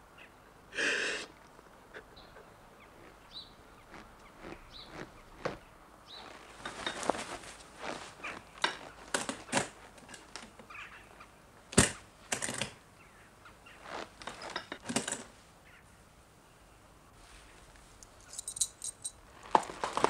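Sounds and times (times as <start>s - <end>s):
handling knocks and clicks: 6.4s - 10.7s, 11.7s - 12.8s, 14.1s - 15.3s, 18.0s - 20.0s.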